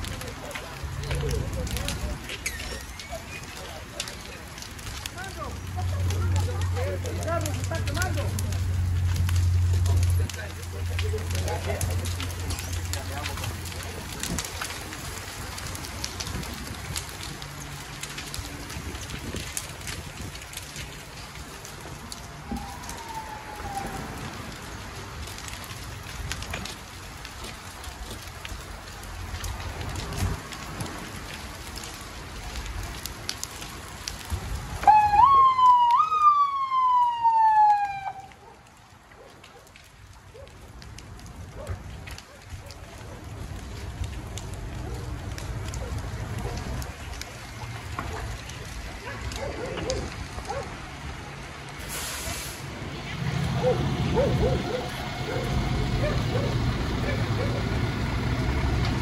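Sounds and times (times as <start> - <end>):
fire crackling and popping: 0.0 - 59.0
emergency siren: 20.8 - 24.8, 34.8 - 38.6, 53.0 - 59.0.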